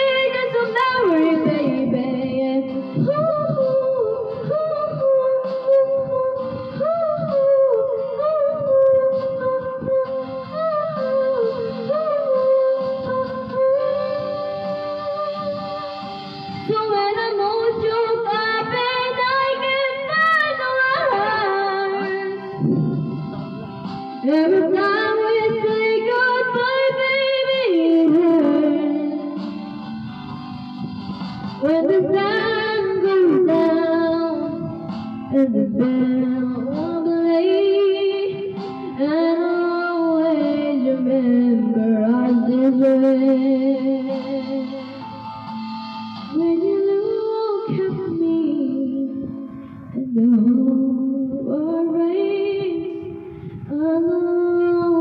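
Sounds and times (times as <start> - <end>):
woman singing a slow ballad: 0.0 - 15.9, 16.6 - 23.2, 24.2 - 29.6, 31.6 - 45.0, 46.2 - 55.0
musical accompaniment: 0.0 - 55.0.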